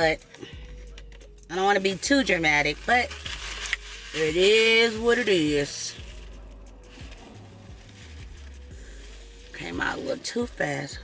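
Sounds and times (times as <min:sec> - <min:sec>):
person speaking: 0:04.1 - 0:06.2.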